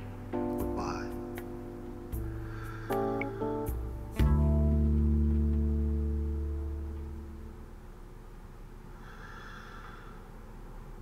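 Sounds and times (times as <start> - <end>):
deep dramatic chord sting: 0.0 - 7.7.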